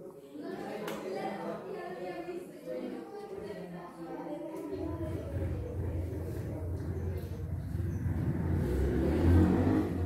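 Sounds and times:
vehicle engine passing by: 5.0 - 10.0.

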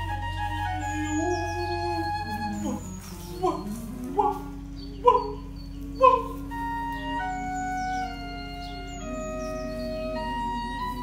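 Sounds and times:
held instrumental tones: 0.0 - 11.0
steady low drone: 0.0 - 11.0.

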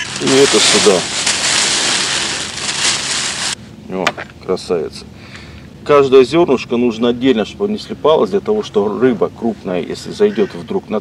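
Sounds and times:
plastic bag crinkling: 0.0 - 3.6.

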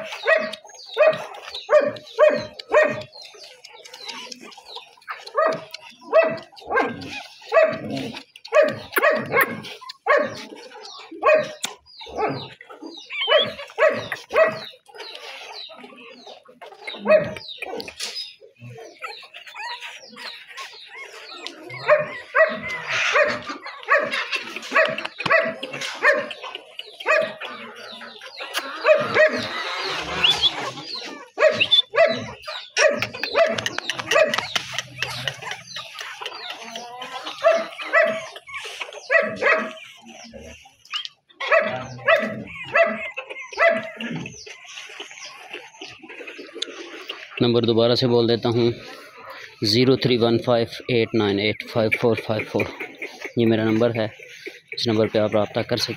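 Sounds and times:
puppies yapping: 0.0 - 55.9.

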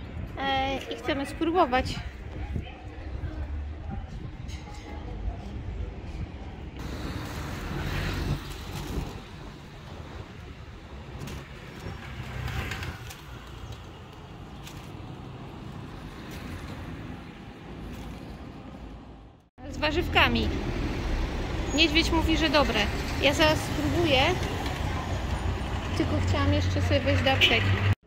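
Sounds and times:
road noise rumble: 0.0 - 28.0
vehicles passing: 5.0 - 28.0.

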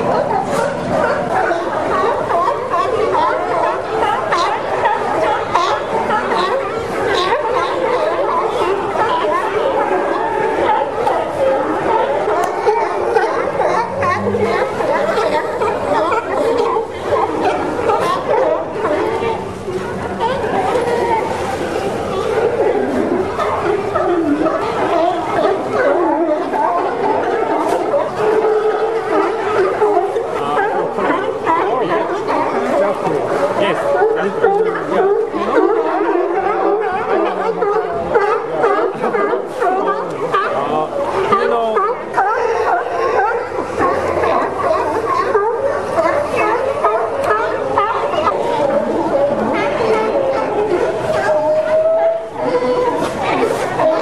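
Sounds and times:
sea lions barking: 0.0 - 54.0.

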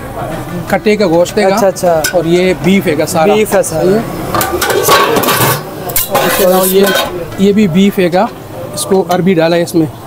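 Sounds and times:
metal pot lid clinking: 4.4 - 7.4.

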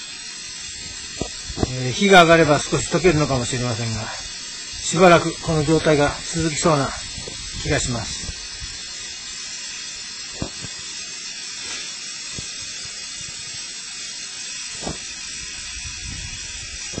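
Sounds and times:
water hissing from leaking pipe: 0.0 - 17.0.

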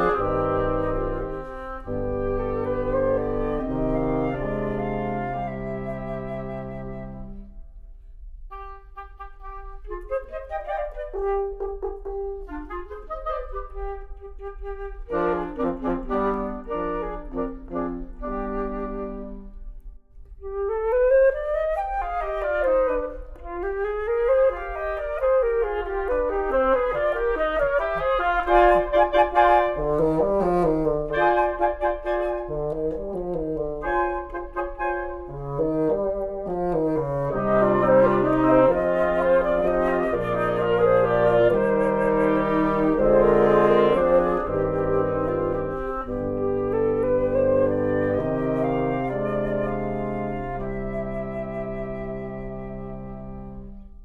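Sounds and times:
wind quintet playing a minuet: 0.0 - 54.0.

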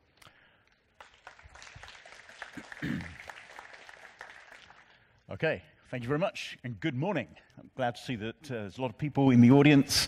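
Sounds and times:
audience applauding: 0.9 - 5.1.

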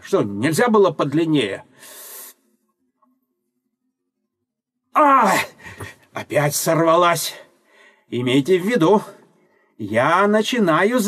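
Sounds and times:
man's hissing breath: 1.8 - 2.4.

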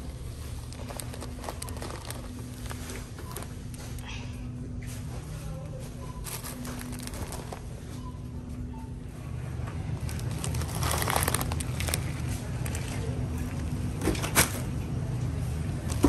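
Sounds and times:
store background hum: 0.0 - 16.0
plastic bag crinkling: 0.1 - 4.1, 6.2 - 8.0, 9.9 - 13.7.

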